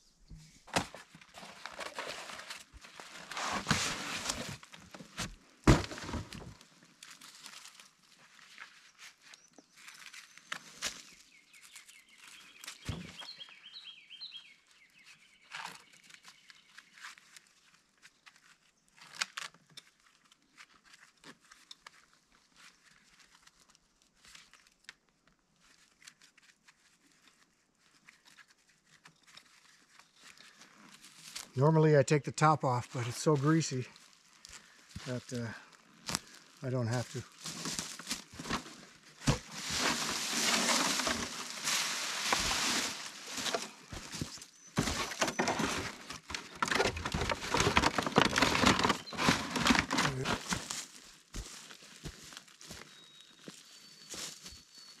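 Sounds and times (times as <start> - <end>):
rustling and crackling: 0.3 - 13.3, 32.9 - 53.6.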